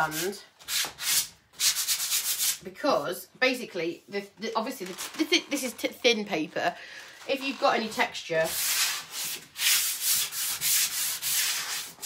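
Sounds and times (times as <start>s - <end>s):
sanding sponge scratching wood: 0.0s - 2.6s, 8.5s - 12.0s.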